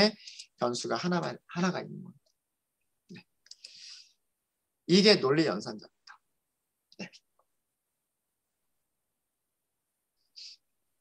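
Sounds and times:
soft hiss: 10.0 - 11.0.

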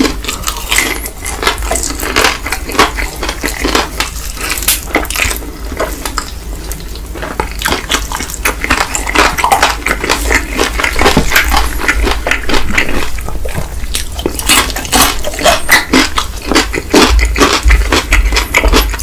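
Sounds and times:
chewing crispy fried chicken: 0.0 - 19.0
wet mouth sounds: 0.0 - 19.0.

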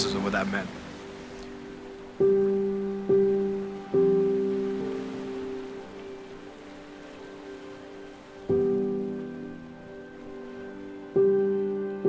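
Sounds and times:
soft piano chords: 0.0 - 12.0.

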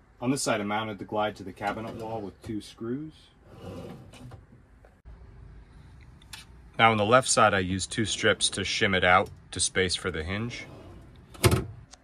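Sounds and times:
metal drawer sliding shut: 3.5 - 4.4, 10.5 - 11.8.

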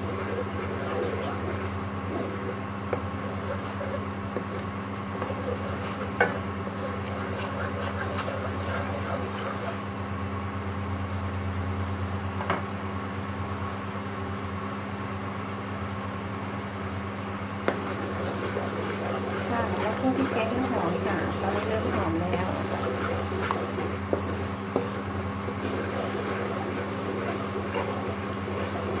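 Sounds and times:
wooden spatula stirring: 0.0 - 10.0, 17.7 - 29.0
curry bubbling and sizzling: 0.0 - 10.1, 17.7 - 29.0
low electrical hum: 0.0 - 29.0.

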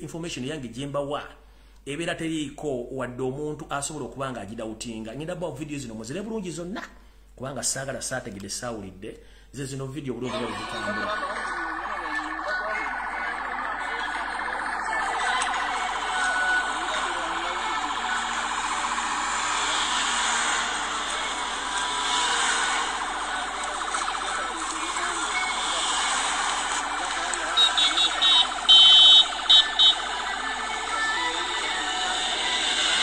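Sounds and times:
road noise from moving vehicle: 10.3 - 33.0
vehicle siren: 10.3 - 33.0.

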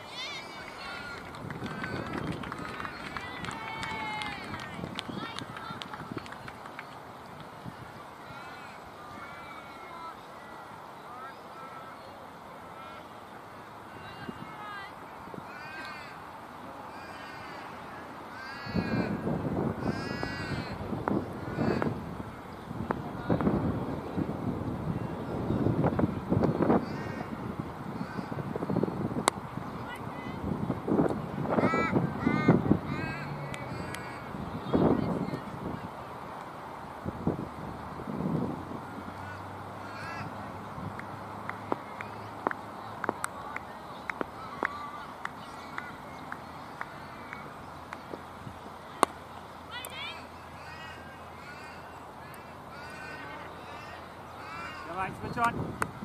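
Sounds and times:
crow cawing: 15.5 - 16.2, 16.9 - 17.7, 18.3 - 19.2, 19.8 - 20.8, 26.8 - 27.3, 39.2 - 40.3, 50.6 - 55.0.

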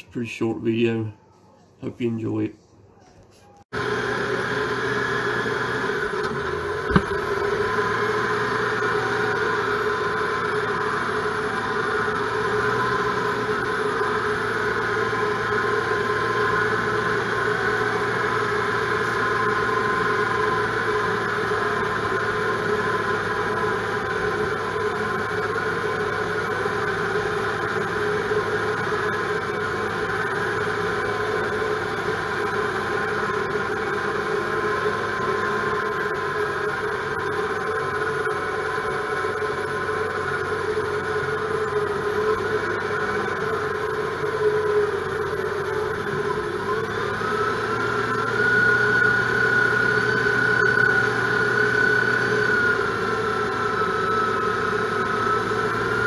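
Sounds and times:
diesel engine running: 3.7 - 56.0.

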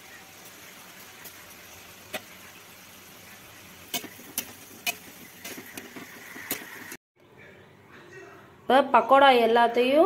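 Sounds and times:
oil sizzling: 0.0 - 7.0.

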